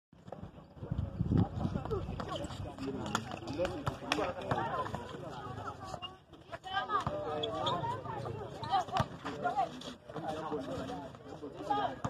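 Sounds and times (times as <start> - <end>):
basketball bouncing on concrete: 0.2 - 5.7, 6.5 - 9.5
voices chattering and calling: 0.4 - 12.0.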